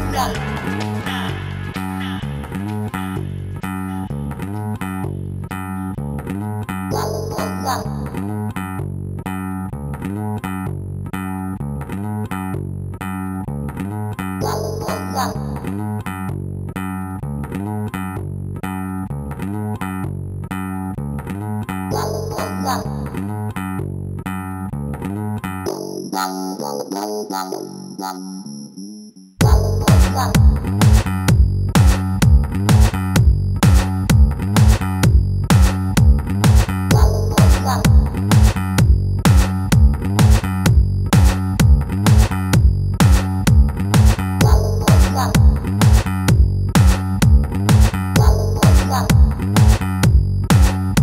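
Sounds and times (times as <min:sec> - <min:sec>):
house music with bassline: 0:00.0 - 0:28.5, 0:29.4 - 0:51.0.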